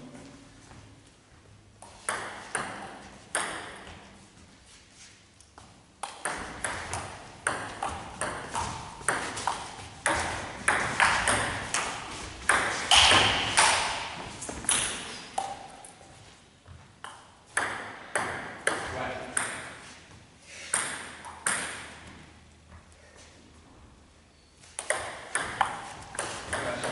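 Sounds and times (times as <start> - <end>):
ping-pong ball clicking: 24.8 - 26.9.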